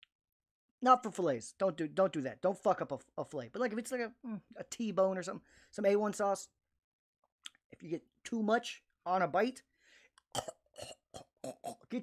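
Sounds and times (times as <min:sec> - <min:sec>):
man making throaty vocal noises: 0:10.3 - 0:12.0.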